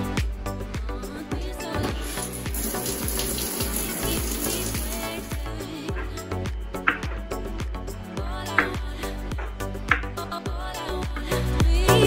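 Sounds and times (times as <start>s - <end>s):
background music with a beat: 0.0s - 12.0s
shower water running: 2.0s - 5.6s.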